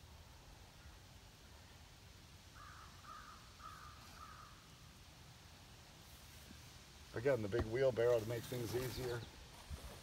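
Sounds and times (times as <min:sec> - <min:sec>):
faint crow cawing: 0:02.5 - 0:04.7.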